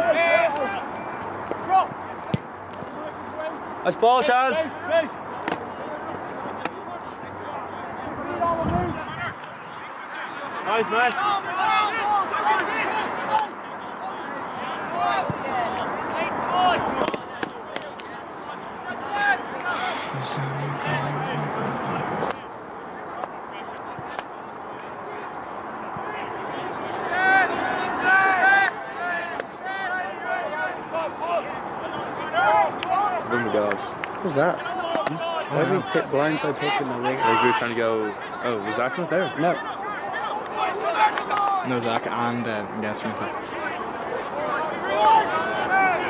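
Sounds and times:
distant shouting and calls: 0.0s - 42.1s, 43.1s - 46.0s
outdoor background noise: 0.0s - 46.0s.

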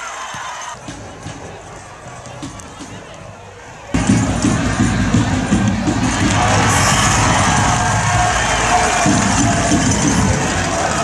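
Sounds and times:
loud background music: 4.0s - 11.0s.

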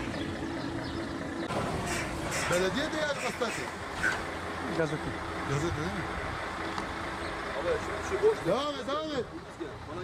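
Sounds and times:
truck engine rumbling: 0.0s - 10.0s.

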